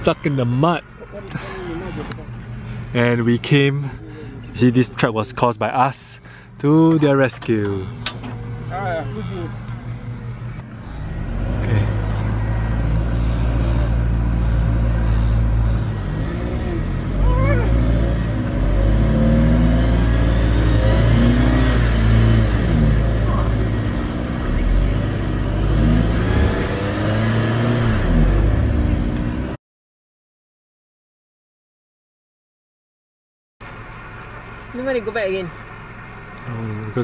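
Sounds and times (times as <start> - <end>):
vehicle engine revving: 6.3 - 29.6, 33.6 - 37.0.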